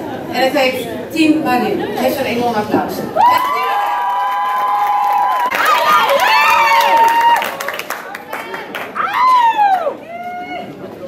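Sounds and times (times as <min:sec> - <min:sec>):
high whoops: 0:03.2 - 0:07.8, 0:09.0 - 0:10.8
audience cheering: 0:03.2 - 0:10.7
scattered clapping: 0:03.8 - 0:09.8.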